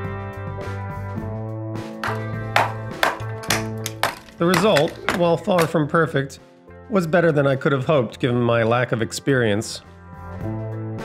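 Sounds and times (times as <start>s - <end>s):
sharp percussive hits: 2.0s - 5.7s
held chords: 2.0s - 5.8s.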